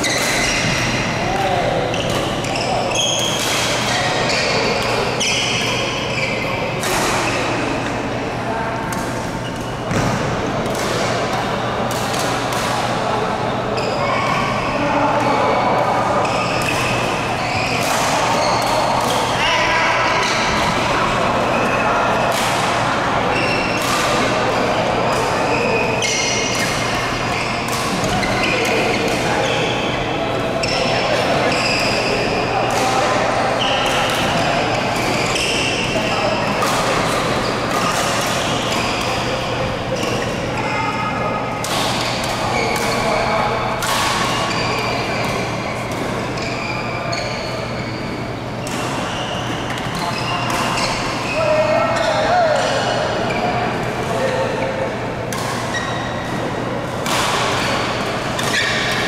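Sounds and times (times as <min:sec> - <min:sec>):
shoes squeaking on court: 0:00.0 - 0:07.5, 0:41.9 - 0:43.2, 0:44.2 - 0:53.6
rackets striking shuttlecock: 0:02.0 - 0:05.8, 0:43.8 - 0:46.2, 0:55.3 - 0:59.0.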